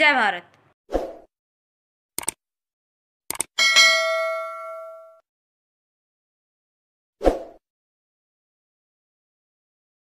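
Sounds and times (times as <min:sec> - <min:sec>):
click sound effects: 0:02.2 - 0:02.4, 0:03.3 - 0:03.5
notification bell ding: 0:03.6 - 0:05.2.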